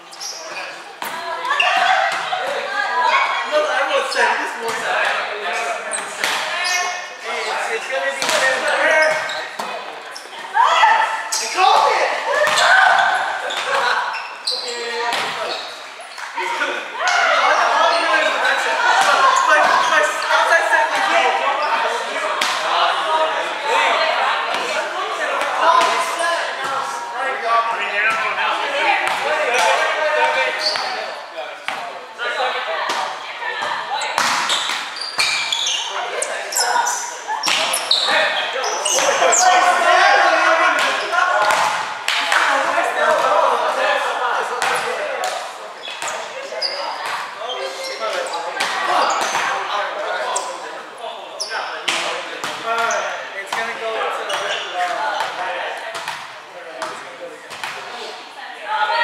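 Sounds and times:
players calling out: 0.0s - 59.0s.

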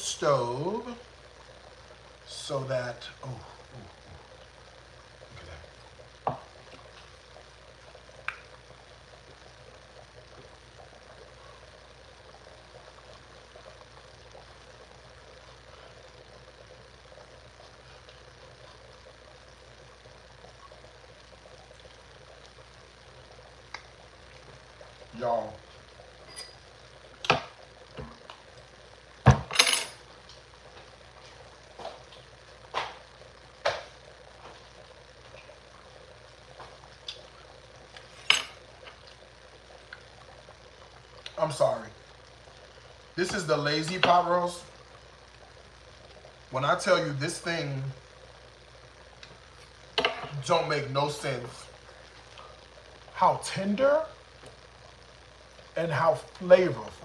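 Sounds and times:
faint background hiss: 0.0s - 57.0s.

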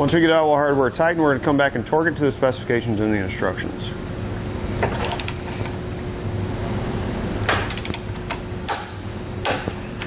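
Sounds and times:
torque wrench ratcheting and clicking: 7.7s - 8.0s.

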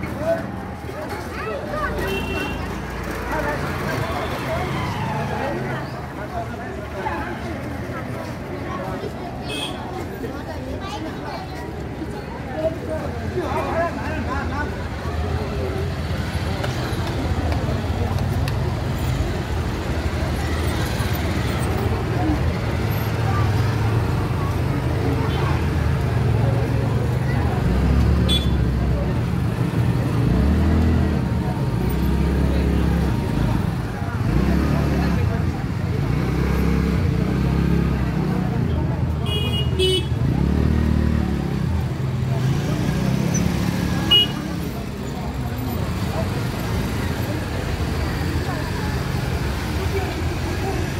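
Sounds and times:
crowd talking: 0.0s - 50.9s.

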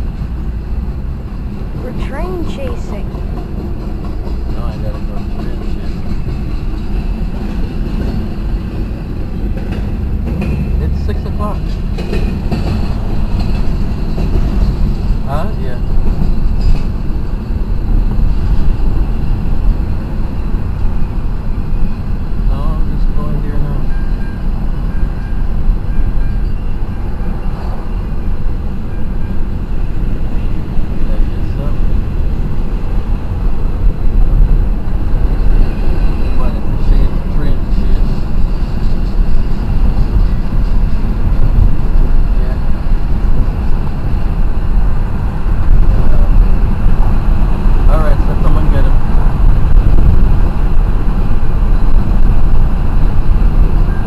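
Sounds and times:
freight train rumble: 0.0s - 54.0s
road and wind noise in car: 0.0s - 54.0s.

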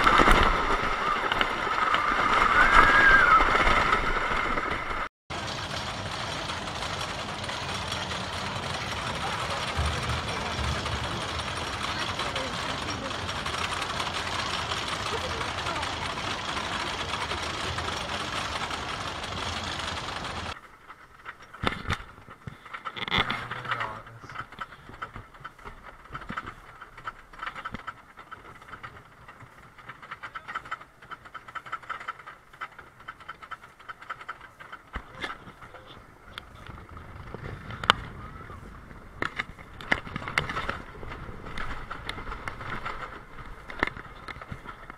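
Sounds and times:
roller coaster chain clacking: 0.0s - 44.9s
riders' voices: 5.9s - 20.6s, 22.5s - 25.2s, 34.4s - 43.2s.

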